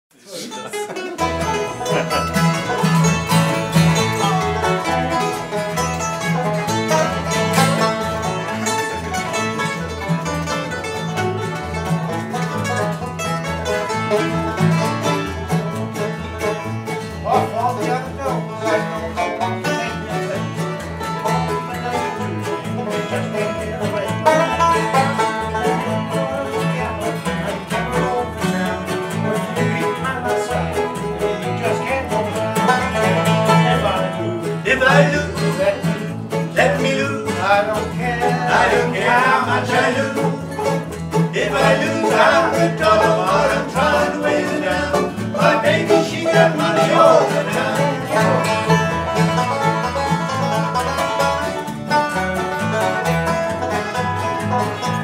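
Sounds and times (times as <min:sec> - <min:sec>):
bluegrass band playing: 0:00.2 - 0:55.0.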